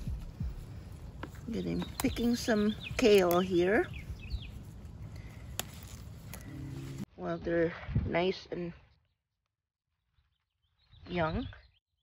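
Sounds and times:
low outdoor rumble: 0.0s - 7.4s
kale leaves snapping: 0.2s - 7.0s.

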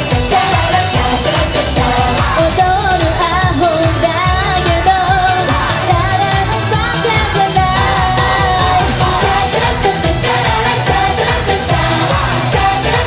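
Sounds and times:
pop backing track with drum beat: 0.0s - 13.0s
women singing: 0.0s - 13.0s.

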